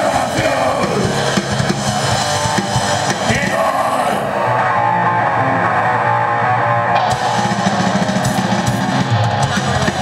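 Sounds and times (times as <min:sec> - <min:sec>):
cymbals and drums: 0:00.0 - 0:04.1, 0:07.0 - 0:10.0
electric guitar holding notes: 0:00.0 - 0:10.0.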